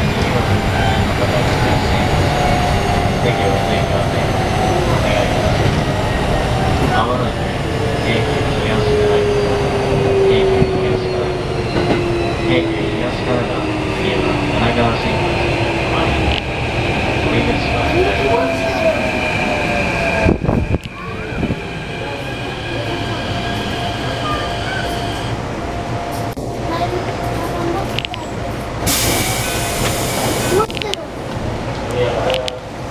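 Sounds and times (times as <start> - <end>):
wheels rumbling on rail: 0.0 - 32.9
compressed air hissing from train: 28.8 - 30.7.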